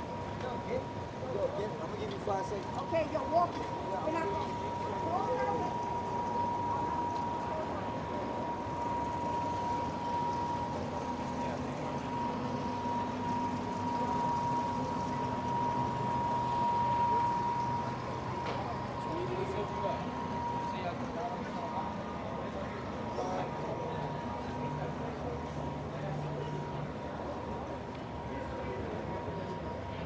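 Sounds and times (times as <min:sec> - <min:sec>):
steady high-pitched tone: 0:00.0 - 0:27.7
pedestrians talking: 0:00.0 - 0:30.0.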